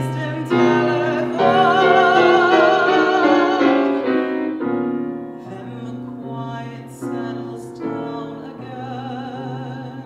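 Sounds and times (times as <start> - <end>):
man singing: 0.0 - 4.1, 5.4 - 10.0
grand piano playing: 0.0 - 10.0.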